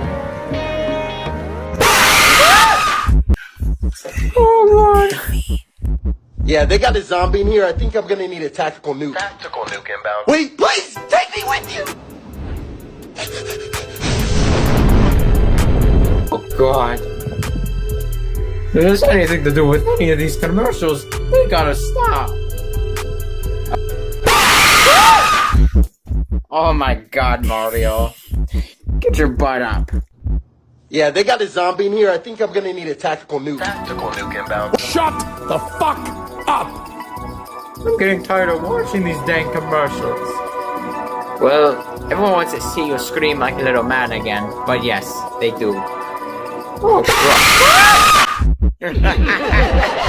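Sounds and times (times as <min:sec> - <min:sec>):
soft calm music: 0:00.0 - 0:01.8, 0:16.2 - 0:24.2, 0:33.6 - 0:47.0
loud jumpscare scream: 0:01.8 - 0:03.2, 0:24.2 - 0:25.6, 0:46.9 - 0:48.4
choppy low bursts: 0:03.1 - 0:08.0, 0:15.4 - 0:23.9, 0:25.8 - 0:30.5
person's voice: 0:04.0 - 0:05.7, 0:18.7 - 0:22.3, 0:26.5 - 0:30.0, 0:37.8 - 0:40.4.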